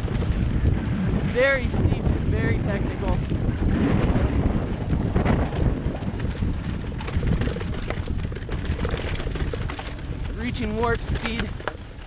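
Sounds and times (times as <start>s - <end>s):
bike clicks and rattles: 0.0s - 12.0s
bike tyres rumbling on dirt: 0.0s - 12.0s
wind on microphone: 0.0s - 12.0s.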